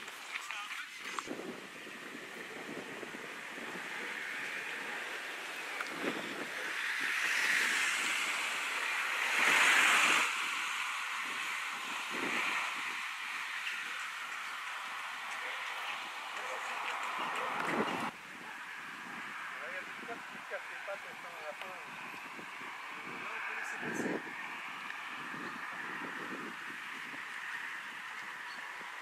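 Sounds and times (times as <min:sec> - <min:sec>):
wind blowing: 0:00.0 - 0:29.0.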